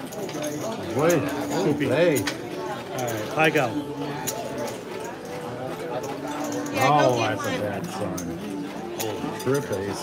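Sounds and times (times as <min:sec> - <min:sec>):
low talking voices: 0:00.0 - 0:10.0.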